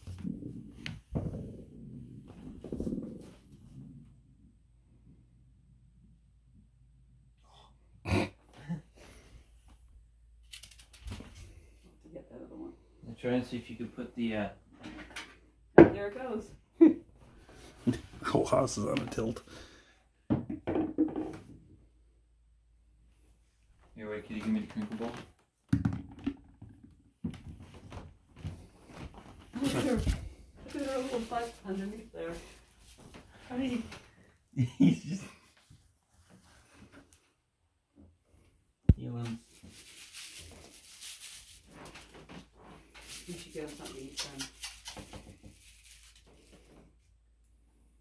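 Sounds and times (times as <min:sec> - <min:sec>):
scuffle: 0:28.4 - 0:33.9
person laughing: 0:34.6 - 0:35.4.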